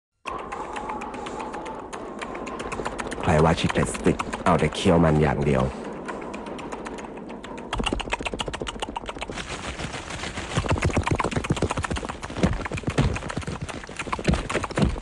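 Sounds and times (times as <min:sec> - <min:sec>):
rapid knocks and thuds: 0:07.7 - 0:15.0.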